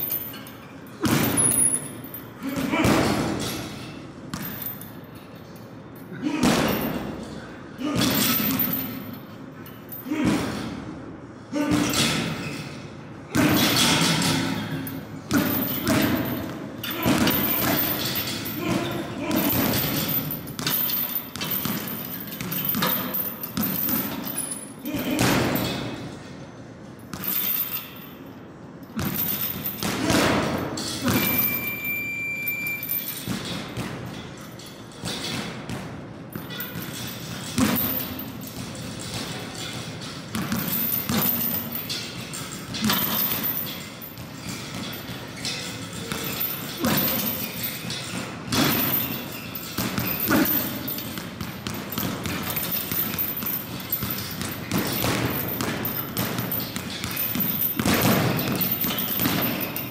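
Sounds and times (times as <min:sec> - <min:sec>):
high beep: 0:31.5 - 0:32.8.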